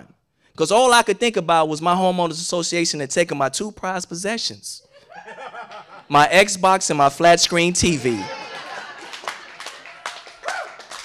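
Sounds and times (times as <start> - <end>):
audience laughing: 4.9 - 6.2, 7.8 - 10.8
audience clapping: 7.8 - 11.0.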